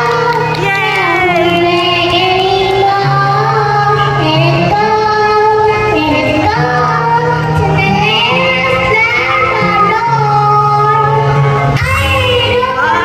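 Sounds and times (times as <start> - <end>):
girl singing into a microphone: 0.0 - 13.0
instrumental accompaniment: 0.0 - 13.0.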